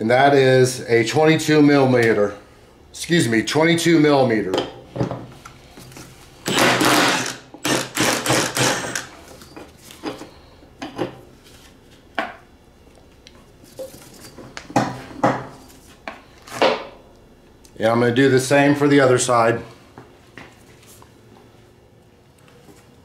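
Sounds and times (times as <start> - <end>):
impact wrench hammering: 6.4 - 9.2.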